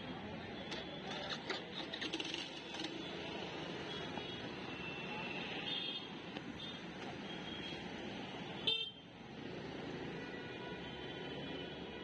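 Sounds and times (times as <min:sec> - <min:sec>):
passing motorbikes and rickshaws: 0:00.0 - 0:12.0.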